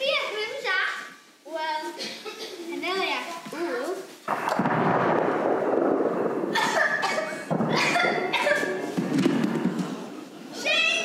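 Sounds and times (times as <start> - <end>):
knock and rustling on stage floor: 8.9 - 10.0.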